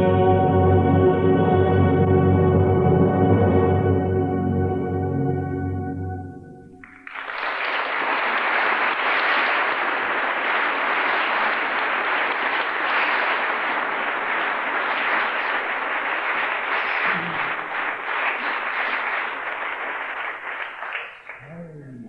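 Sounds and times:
audience applause: 0:06.8 - 0:22.0.

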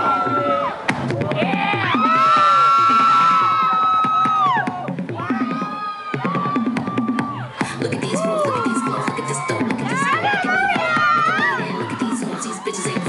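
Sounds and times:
audience cheering and whooping: 0:00.0 - 0:13.0
song over sound system: 0:00.0 - 0:13.0.

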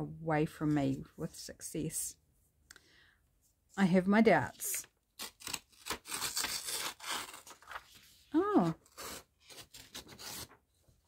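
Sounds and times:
paper tearing: 0:05.2 - 0:10.6.

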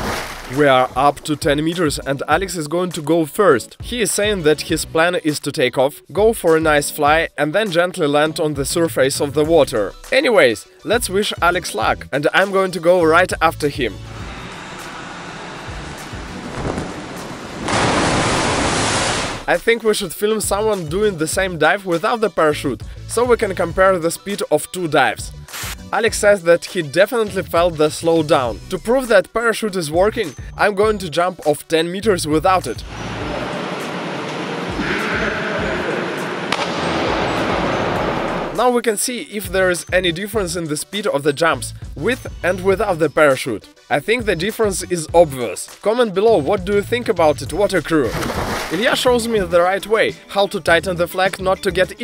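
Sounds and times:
diver splashing into pool: 0:00.0 - 0:00.9, 0:16.0 - 0:19.5, 0:36.2 - 0:38.6, 0:48.1 - 0:49.0
steady rushing noise: 0:14.1 - 0:19.5.

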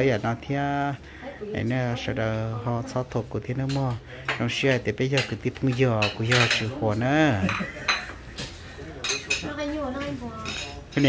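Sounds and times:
plates and cutlery clinking: 0:03.5 - 0:11.0.

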